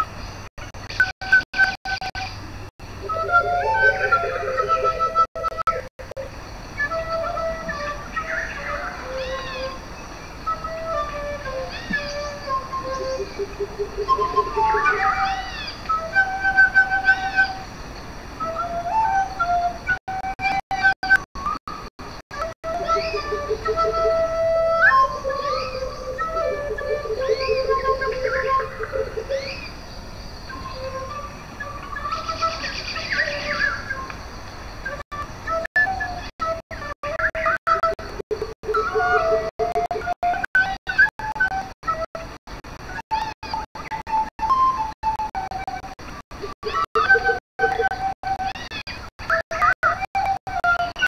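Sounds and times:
end-blown flute playing: 3.0 - 17.8, 18.4 - 51.0
bird-like chirps and trill: 3.1 - 19.8, 20.5 - 41.6, 43.1 - 45.8, 46.4 - 51.0.

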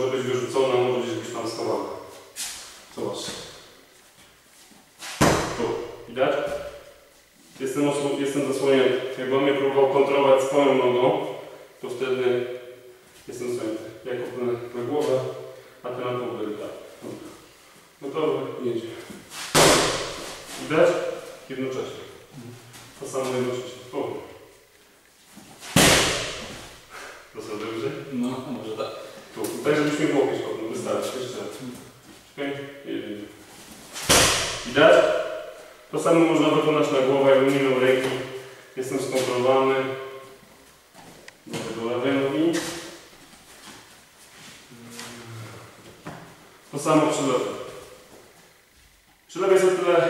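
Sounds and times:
kick smacking kick shield: 5.2 - 5.6, 19.5 - 20.3, 25.7 - 26.6, 34.0 - 34.7.

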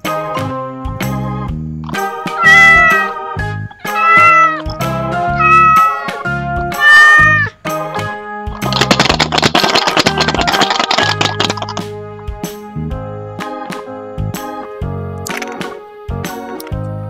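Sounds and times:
background music: 0.0 - 17.0
cat meowing loudly: 2.4 - 3.2, 3.8 - 4.7, 5.3 - 7.6.

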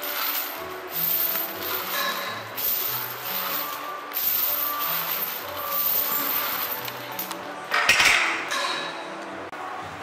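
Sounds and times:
metal chains clinking: 0.0 - 7.4
background music: 0.0 - 10.0.

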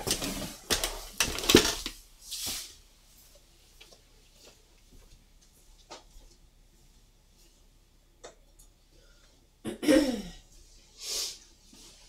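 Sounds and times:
soft rustle: 2.1 - 7.9, 10.5 - 12.0.

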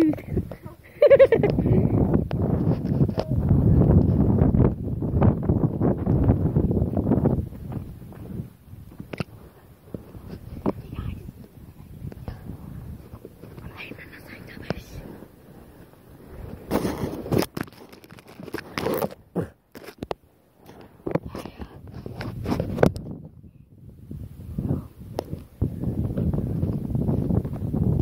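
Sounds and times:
person whispering: 10.7 - 11.4, 13.6 - 15.2, 21.2 - 21.8
camera handling rustling and knocks: 16.7 - 23.2.

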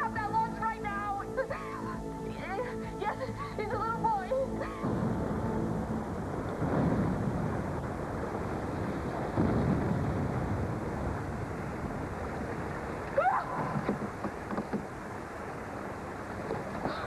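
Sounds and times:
low rumbling explosion: 4.7 - 13.0.

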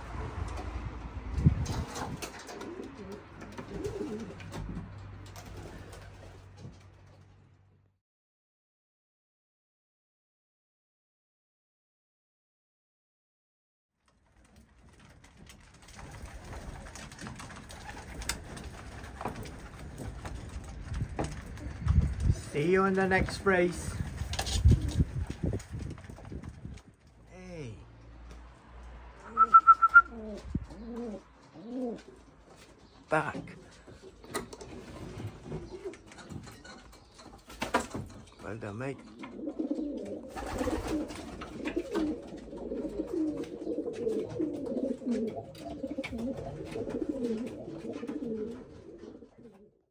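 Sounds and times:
pigeons cooing: 2.1 - 4.7, 29.3 - 33.0, 33.6 - 37.5, 39.0 - 49.8.

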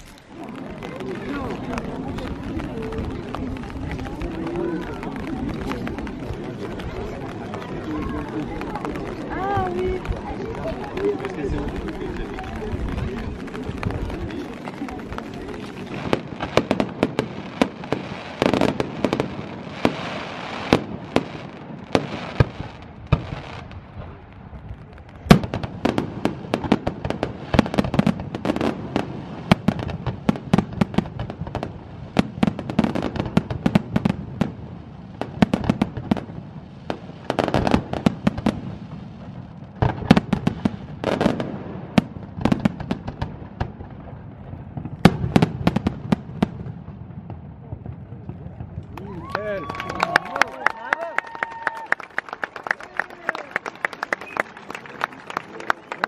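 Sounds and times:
fireworks bangs: 0.0 - 50.7
fireworks crackling: 0.0 - 56.0.

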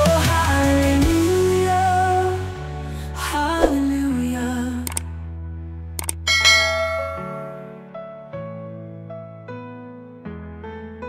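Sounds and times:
soft background music chords: 0.0 - 9.7
mouse-click sound effects: 4.8 - 5.1, 6.0 - 6.2
notification bell chime: 6.3 - 7.7.

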